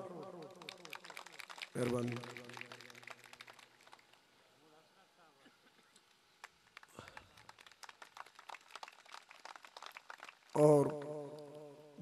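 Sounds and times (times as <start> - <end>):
scattered hand-clapping: 0.0 - 4.2, 6.4 - 11.5.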